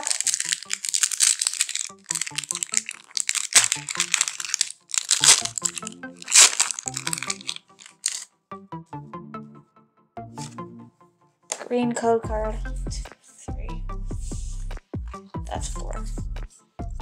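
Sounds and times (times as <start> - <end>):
foil wrapper crinkling: 0.0 - 8.2
background music: 0.0 - 17.0.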